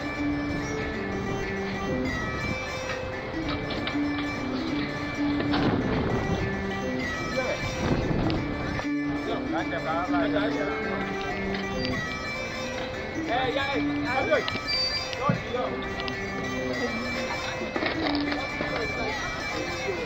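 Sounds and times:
background music with held notes: 0.0s - 20.0s.

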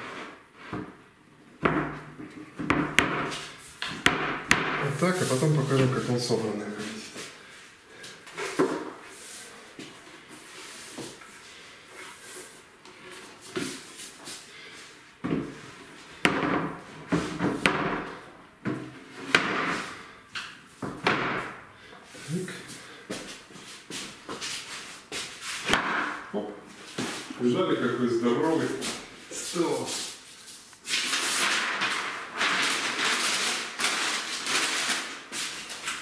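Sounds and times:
wood knocking on wood: 1.6s - 4.9s.

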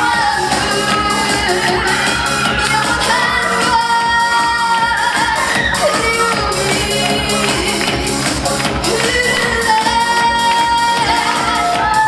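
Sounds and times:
loud backing music: 0.0s - 12.0s
woman singing into microphone: 0.0s - 12.0s.

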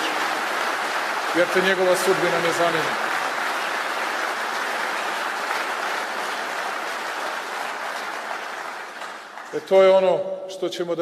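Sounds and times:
audience applauding: 0.0s - 10.1s.

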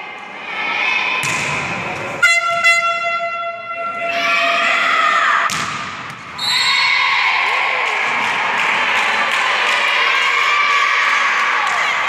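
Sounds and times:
sports hall crowd noise: 0.0s - 12.0s
loud horn blast: 2.2s - 4.1s.

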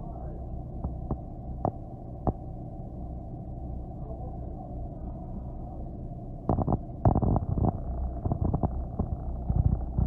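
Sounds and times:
bus engine rumble inside cabin: 0.0s - 3.0s, 3.7s - 10.0s.

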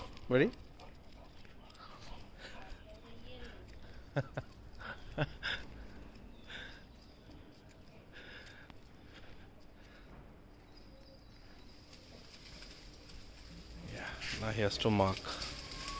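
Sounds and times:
person laughing: 3.8s - 6.0s
faint bird calls: 15.2s - 15.9s.

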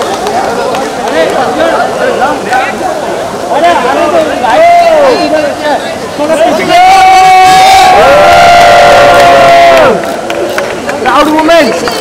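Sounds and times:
people shouting with joy: 6.4s - 10.0s.

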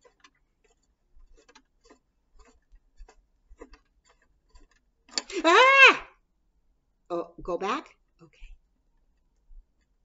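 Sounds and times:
clock mechanism clicking: 0.0s - 2.6s.

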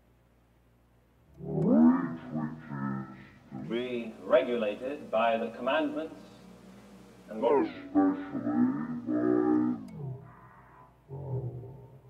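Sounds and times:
man speaking drawn-out word: 2.1s - 6.4s, 7.3s - 8.8s.

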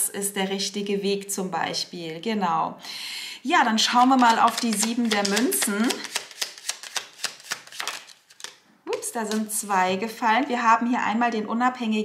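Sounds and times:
cards being shuffled by hand: 3.9s - 9.6s.

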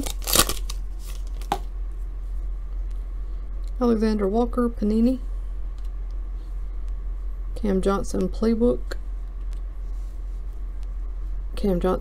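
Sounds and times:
foil wrapper tearing: 0.0s - 1.6s.

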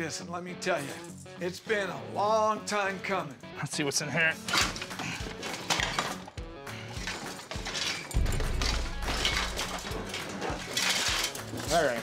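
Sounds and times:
background music: 0.0s - 12.0s
household items knocking and clattering: 4.5s - 12.0s.

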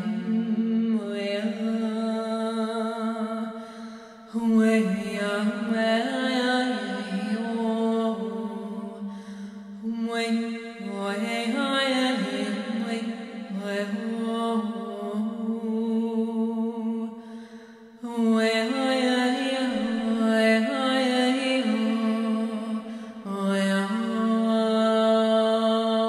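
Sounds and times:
woman chanting wordless notes: 0.0s - 3.6s, 4.3s - 17.2s, 18.0s - 26.0s.

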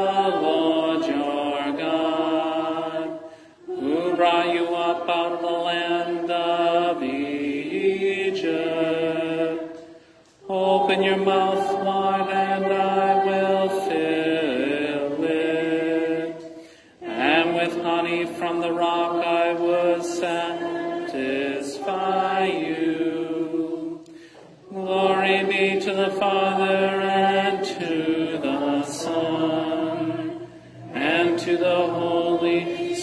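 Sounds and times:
congregation chanting: 0.0s - 33.0s.

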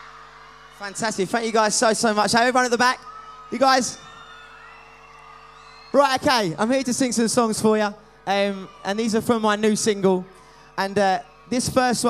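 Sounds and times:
audience cheering: 0.0s - 12.0s.

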